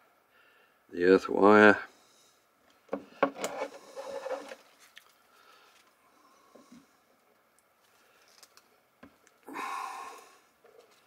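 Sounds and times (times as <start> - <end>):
rustling of wire handling: 2.6 - 6.0, 7.2 - 9.4, 10.6 - 11.0.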